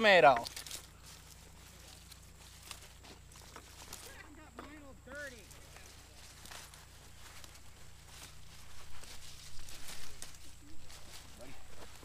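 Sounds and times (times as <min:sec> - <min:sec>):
rustling and snapping of plants: 0:00.0 - 0:12.0.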